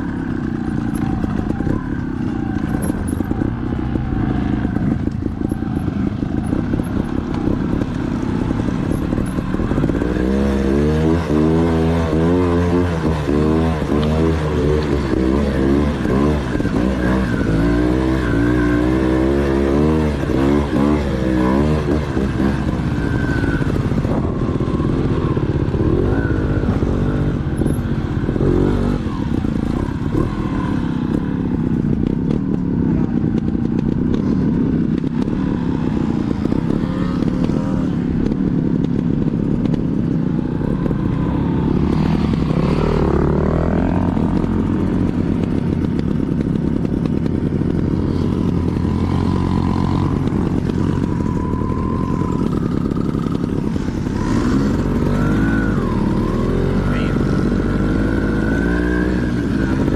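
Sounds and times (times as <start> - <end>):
dirt bike engine revving: 0.0 - 32.4, 40.3 - 59.9.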